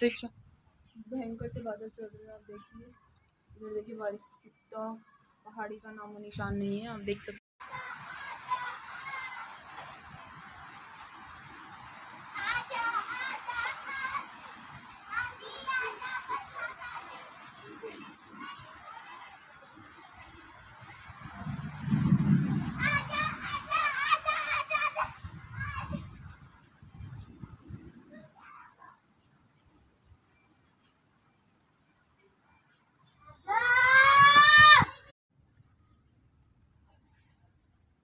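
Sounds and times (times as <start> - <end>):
steady outdoor hiss: 0.0 - 38.0
distant children calling out: 7.6 - 10.0, 12.0 - 21.3, 22.6 - 26.2, 28.1 - 29.1.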